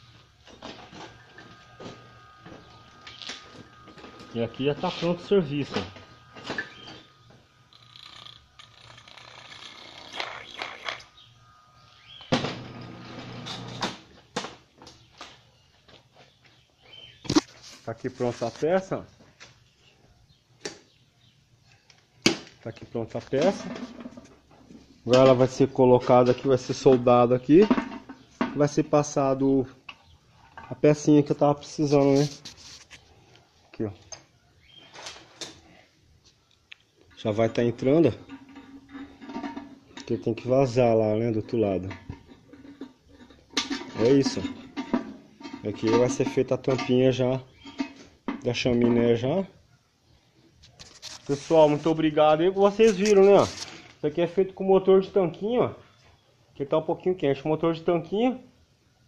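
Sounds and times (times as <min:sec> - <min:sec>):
metal parts and tools clattering: 0:37.9 - 0:40.3, 0:41.6 - 0:48.2.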